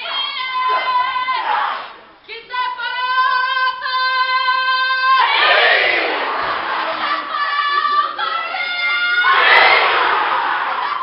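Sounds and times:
group shouting together: 5.2 - 7.2, 9.2 - 11.0.

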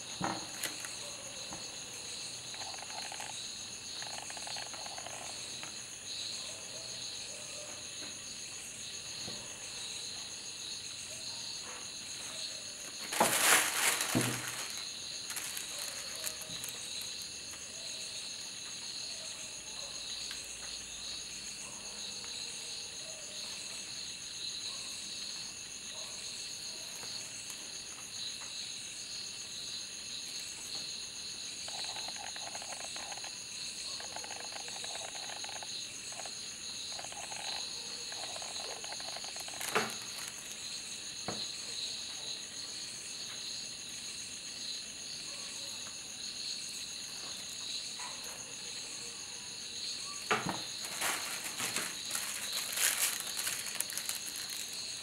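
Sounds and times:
crickets chirring: 0.0 - 55.0.

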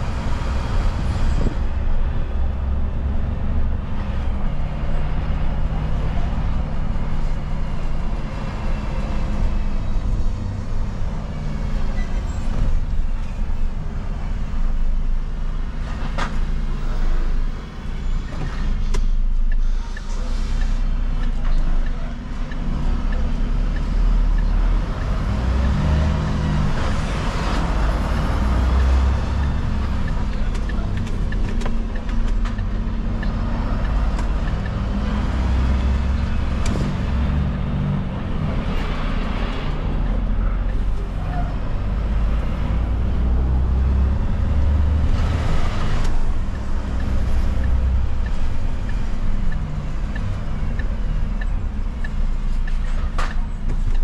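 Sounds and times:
road noise: 0.0 - 54.0
truck diesel engine: 0.0 - 54.0.

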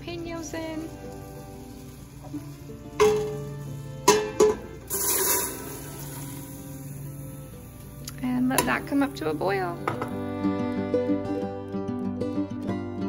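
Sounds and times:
soft background music: 0.0 - 13.0
bowl clinking on steel pot: 4.1 - 5.6.

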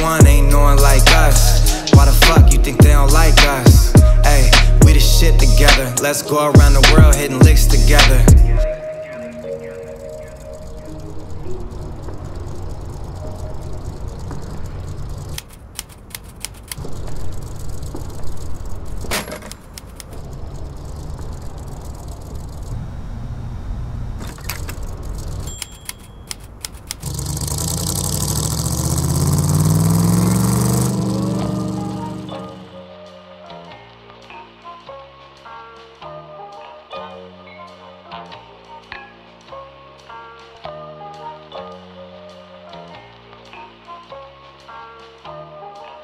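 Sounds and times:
car engine rumbling and revving: 10.7 - 25.6, 26.4 - 32.7
sharp clicks and knocks: 11.8 - 22.8, 24.2 - 27.3.

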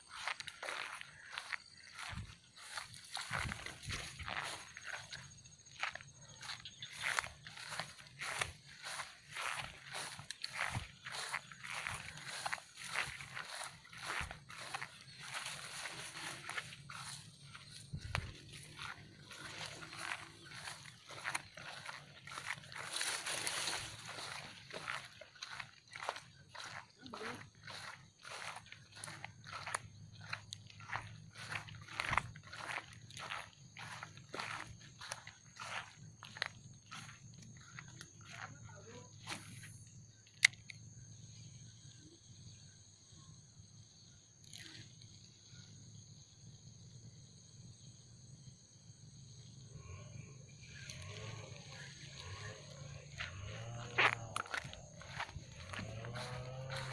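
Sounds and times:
footsteps through grass and leaves: 0.0 - 39.8, 50.6 - 56.9.

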